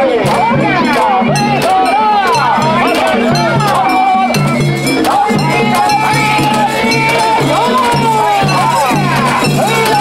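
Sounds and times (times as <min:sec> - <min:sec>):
festival music melody: 0:00.0 - 0:10.0.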